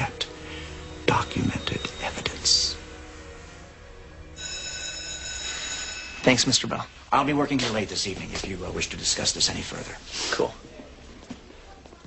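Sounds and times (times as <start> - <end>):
classroom bell ringing: 4.3 - 6.9.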